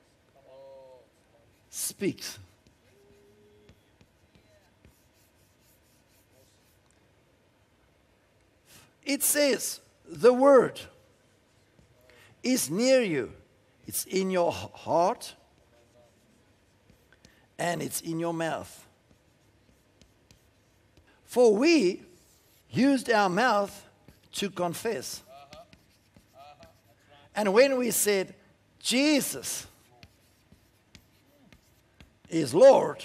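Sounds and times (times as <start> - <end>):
chalk scratching on chalkboard: 1.4 - 7.0, 11.0 - 12.1, 13.9 - 28.1, 28.9 - 33.0.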